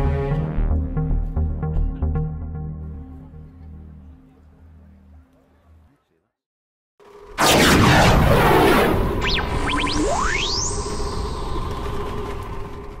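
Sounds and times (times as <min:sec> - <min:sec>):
rising electronic zips: 0:07.4 - 0:12.7
held synth drone: 0:07.8 - 0:12.5
long rising glide: 0:07.9 - 0:13.0.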